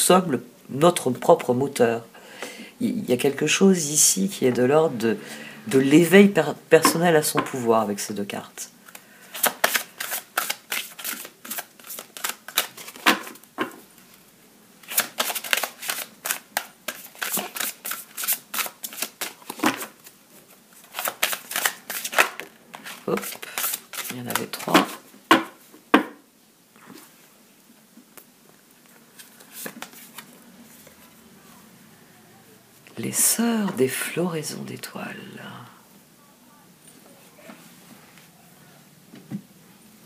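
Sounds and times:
cards being shuffled: 8.8 - 13.4, 14.8 - 25.0, 29.1 - 31.1.

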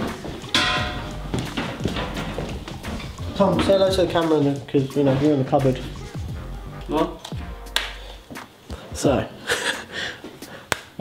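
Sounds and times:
footsteps on tiled floor: 0.0 - 5.6, 10.1 - 10.6.

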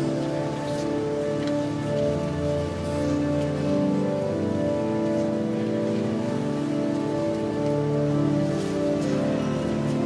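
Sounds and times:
pipe organ playing: 0.0 - 10.0.

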